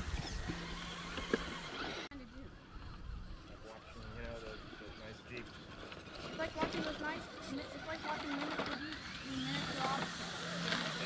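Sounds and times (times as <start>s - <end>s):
electric motor whining: 0.0s - 11.0s.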